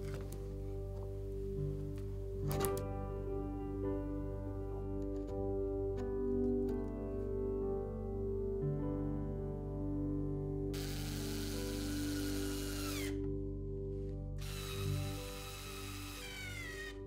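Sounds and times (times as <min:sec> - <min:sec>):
soft background music: 0:00.0 - 0:17.0
cordless screwdriver motor whine: 0:10.8 - 0:13.2, 0:14.4 - 0:17.0.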